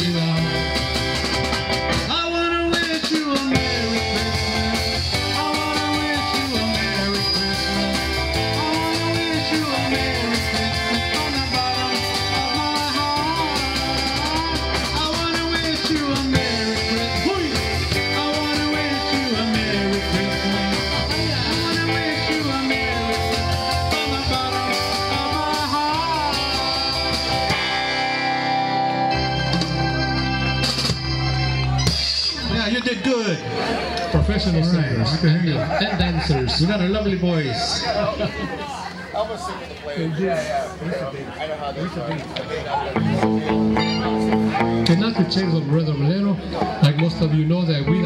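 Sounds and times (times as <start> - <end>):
live band playing: 0.0 - 48.0.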